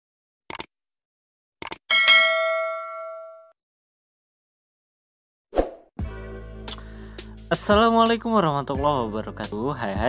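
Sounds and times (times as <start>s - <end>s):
bright bell ding: 1.9s - 3.5s.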